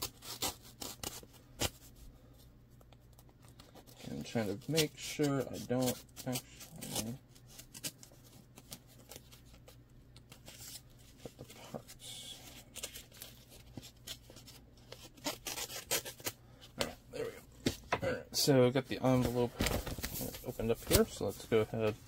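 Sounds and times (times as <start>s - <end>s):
paper envelope rustling: 19.1s - 22.0s.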